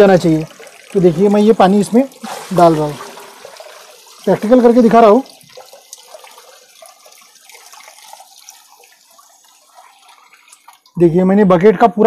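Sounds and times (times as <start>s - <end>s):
water splashing into tank: 0.0s - 11.0s
thin water trickle: 0.0s - 11.5s.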